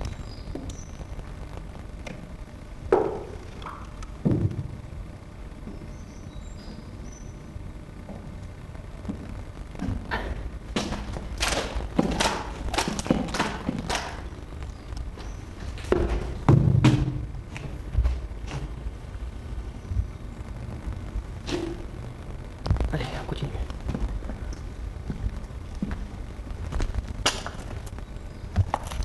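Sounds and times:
footsteps on wooden pallets: 8.0 - 14.3, 15.1 - 18.8, 23.8 - 26.1.

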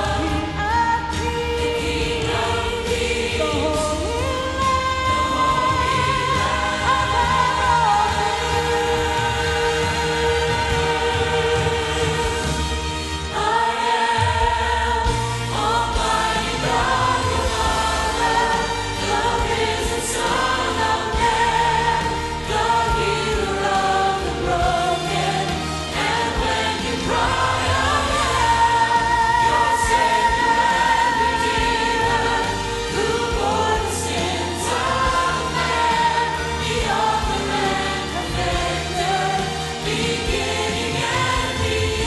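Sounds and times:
instrumental accompaniment: 0.0 - 42.0
mixed choir singing: 0.0 - 42.0.

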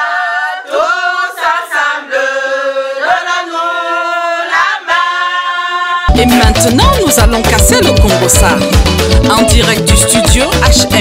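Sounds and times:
group singing in harmony: 0.0 - 6.4.

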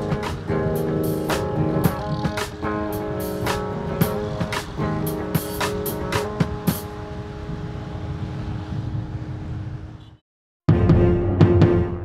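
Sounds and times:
wind rumble on microphone: 0.0 - 10.2.

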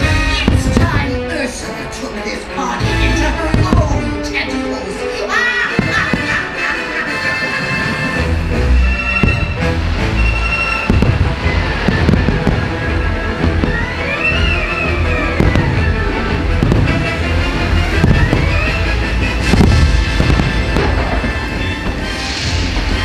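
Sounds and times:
fireworks bangs and crackles: 0.0 - 1.8, 2.8 - 4.6, 5.7 - 23.0
loud show music: 5.7 - 23.0.

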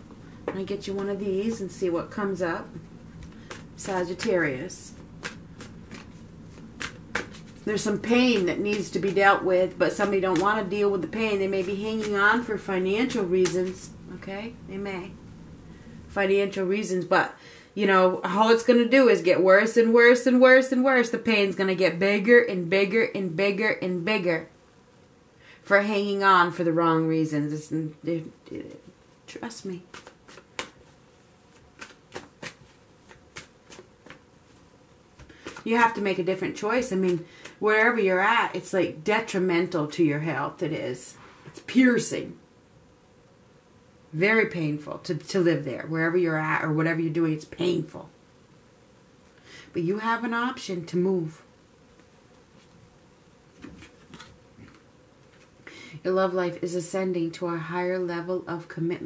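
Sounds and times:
cards rustling while shuffled: 0.4 - 13.9, 29.7 - 37.6, 53.5 - 55.6
card flick: 5.2 - 7.5, 31.8 - 34.2.

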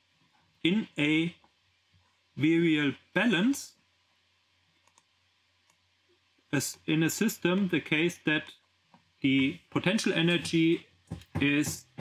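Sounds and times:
faint computer mouse clicks: 4.8 - 5.8.

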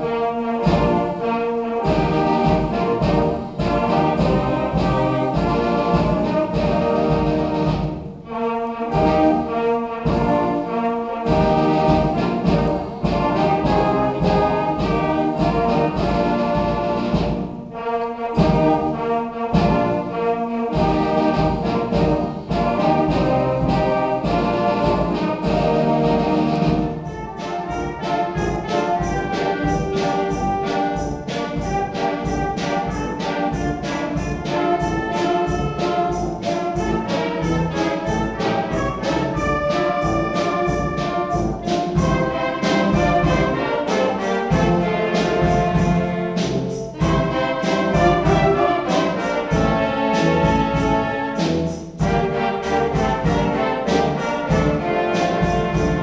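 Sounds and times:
wind band playing: 0.0 - 56.0.

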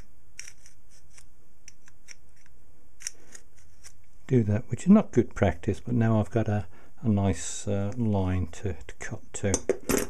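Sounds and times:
metal point scratching metal: 0.0 - 4.0.

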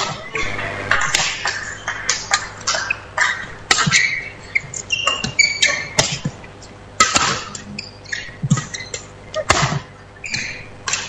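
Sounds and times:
racket striking shuttlecock: 0.0 - 11.0
shoe squeaks: 2.7 - 6.3, 7.5 - 10.8.

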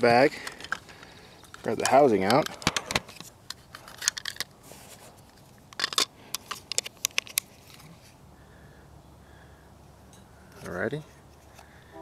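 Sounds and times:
plastic clicks and scrapes: 0.4 - 4.5, 5.2 - 7.9.

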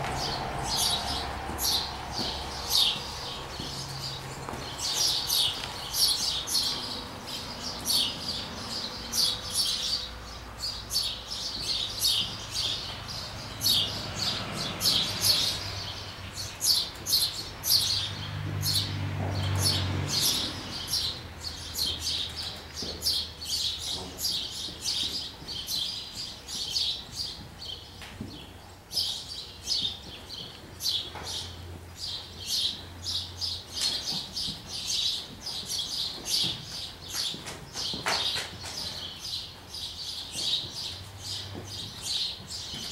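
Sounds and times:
small birds chirping: 0.2 - 42.9.

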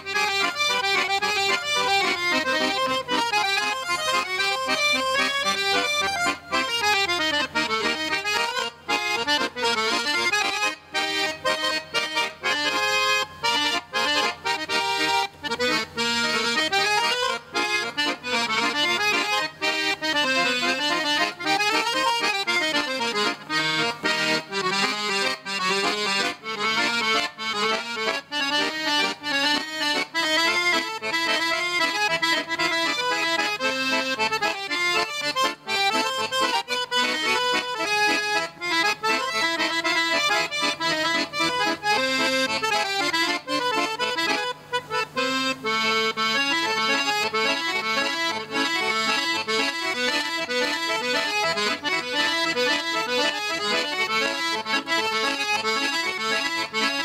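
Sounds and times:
button accordion fast runs: 0.0 - 57.0.

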